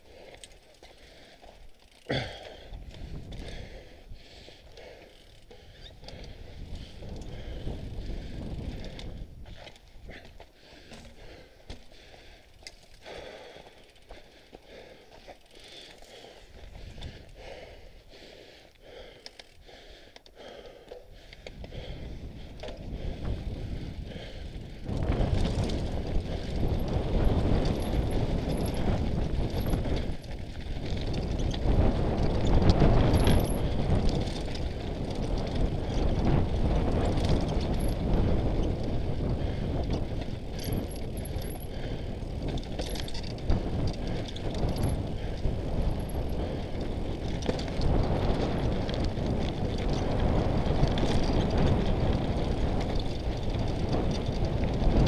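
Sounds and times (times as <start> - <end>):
wind and tyre rush: 0.0 - 55.0
bike rattling over stones: 0.1 - 3.7, 4.4 - 14.2, 21.0 - 55.0.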